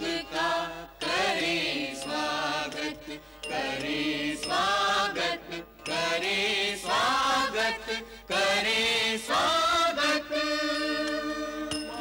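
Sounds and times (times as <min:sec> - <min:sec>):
voices chanting in chorus: 0:00.0 - 0:11.9
devotional music: 0:00.0 - 0:12.0.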